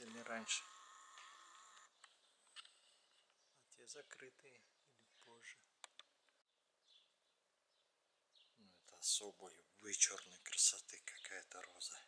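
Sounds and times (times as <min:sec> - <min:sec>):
soft clicks: 0:05.2 - 0:06.4.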